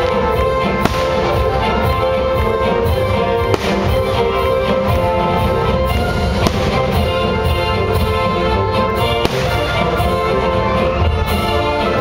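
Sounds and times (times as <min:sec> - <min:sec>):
fireworks bursting: 0:00.0 - 0:10.2
loud music: 0:00.0 - 0:12.0.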